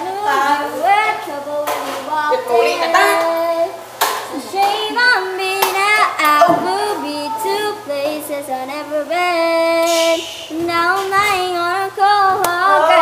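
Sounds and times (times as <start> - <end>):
person singing: 0.0 - 13.0.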